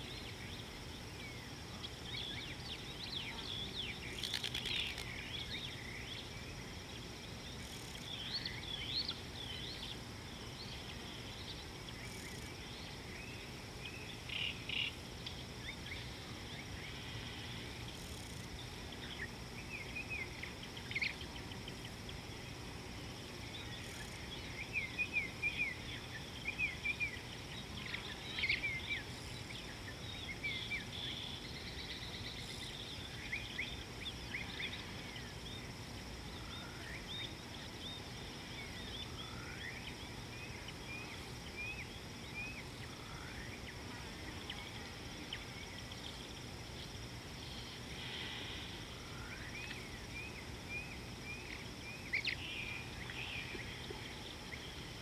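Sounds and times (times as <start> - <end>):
high insect drone: 0.0 - 55.0.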